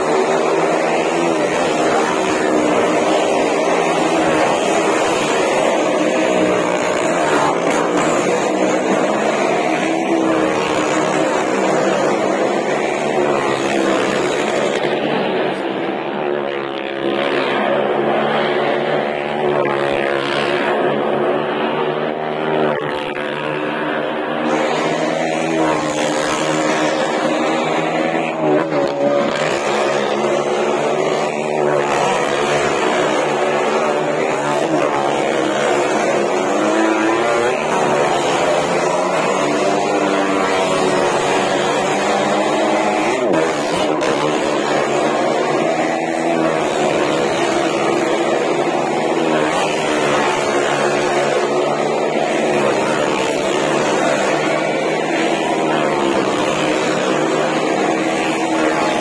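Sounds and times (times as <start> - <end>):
motorcycle and car engines revving: 0.0 - 59.0.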